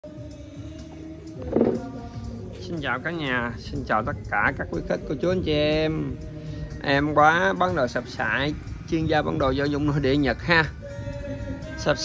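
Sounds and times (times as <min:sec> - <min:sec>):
music with held tones: 0:00.0 - 0:12.0.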